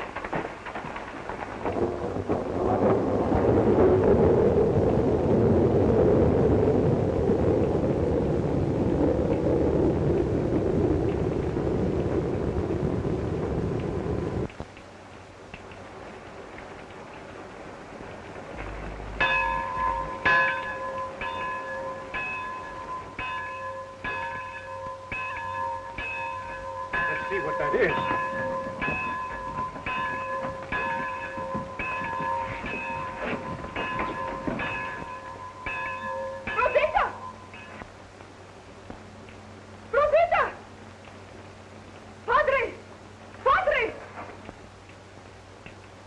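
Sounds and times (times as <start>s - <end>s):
large metal bell ringing: 19.1s - 37.9s.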